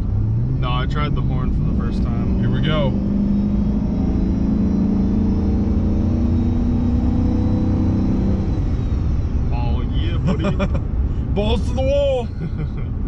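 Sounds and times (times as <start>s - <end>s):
truck engine droning under throttle: 0.0s - 13.0s.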